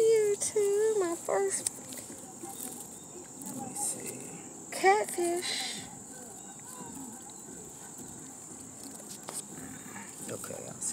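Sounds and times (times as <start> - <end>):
insects trilling: 0.0 - 10.9.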